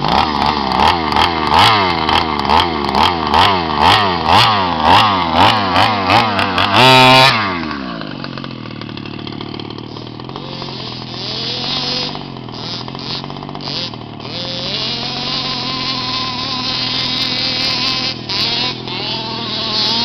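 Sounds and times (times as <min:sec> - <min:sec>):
small two-stroke engine revving: 0:00.0 - 0:20.0.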